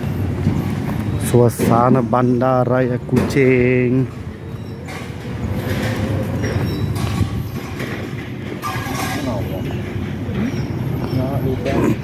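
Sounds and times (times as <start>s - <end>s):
low city rumble: 0.0s - 12.0s
faint voices: 9.0s - 12.0s.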